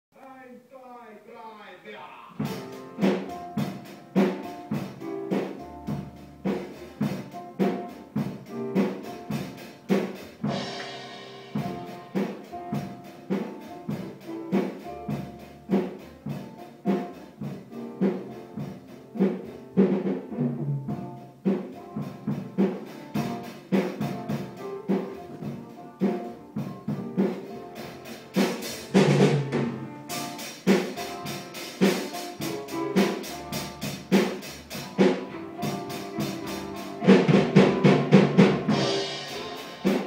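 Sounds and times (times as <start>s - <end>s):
drum kit steady beat: 0.8s - 40.0s.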